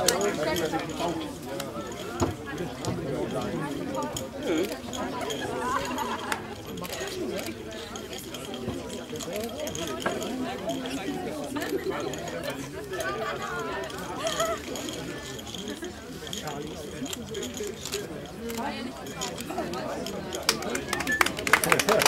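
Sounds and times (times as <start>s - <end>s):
background chatter: 0.0s - 22.0s.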